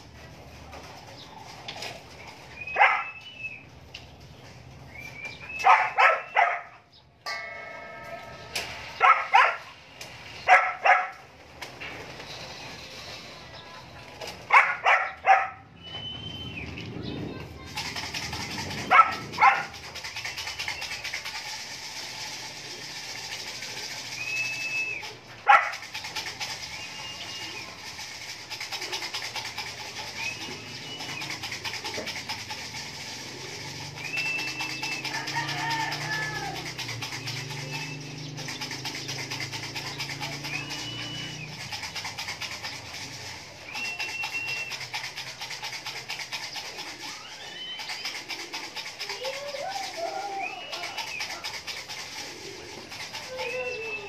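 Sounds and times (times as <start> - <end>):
pigeons cooing: 4.6 - 54.0
pigeon wing claps: 14.0 - 54.0.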